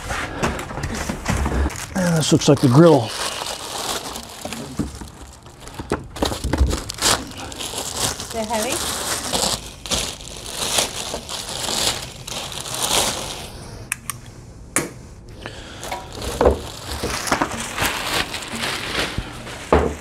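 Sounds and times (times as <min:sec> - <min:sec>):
plastic wrap crinkling: 0:00.4 - 0:13.8, 0:15.6 - 0:20.0.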